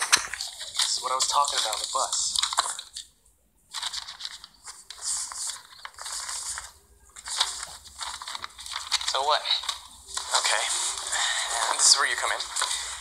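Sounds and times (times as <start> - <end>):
cloth and paper rustling: 0.0 - 3.1, 3.7 - 13.0.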